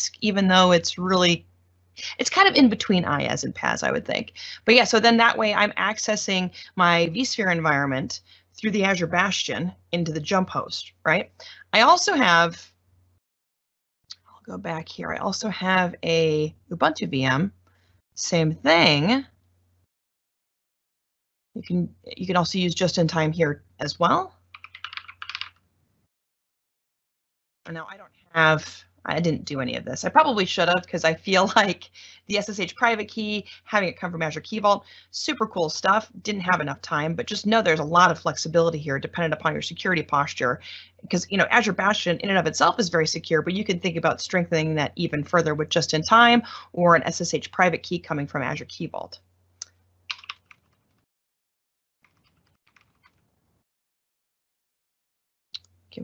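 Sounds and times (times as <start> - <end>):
keyboard typing: 24.5 - 25.6, 50.1 - 50.8
keyboard key clicks: 50.1 - 50.6.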